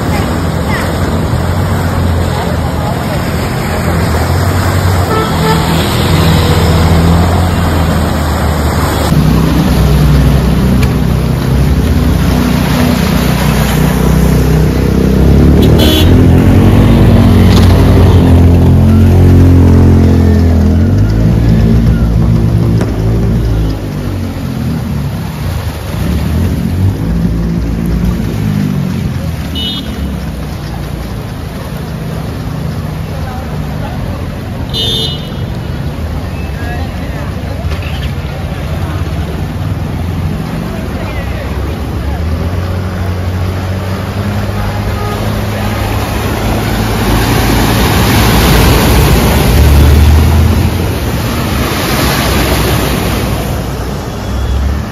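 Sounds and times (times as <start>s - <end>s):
engines revving: 0.0s - 54.9s
water splashing: 0.0s - 54.9s.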